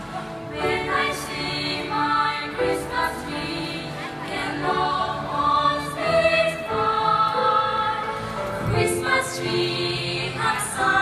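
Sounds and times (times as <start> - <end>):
choir singing sustained notes: 0.0 - 11.0.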